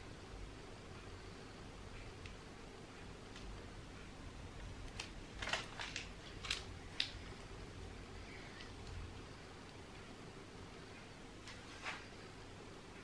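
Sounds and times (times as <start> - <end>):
low steady hum: 0.0 - 13.0
piping bag crinkling: 4.8 - 7.3.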